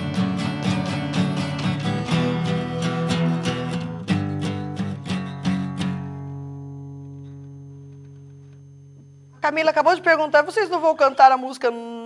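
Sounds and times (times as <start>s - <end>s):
acoustic guitar chord ringing: 0.0s - 9.4s.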